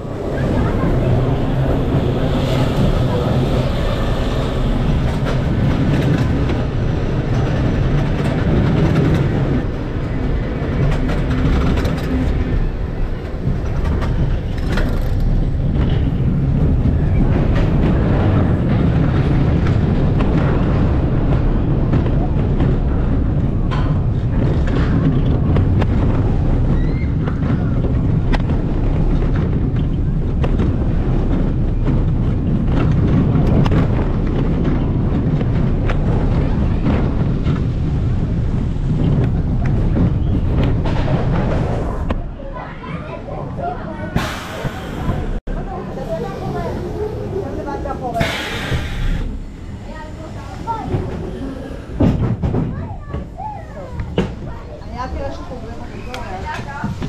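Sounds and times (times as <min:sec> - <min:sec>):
roller coaster wheels rumbling: 0:00.0 - 0:57.0.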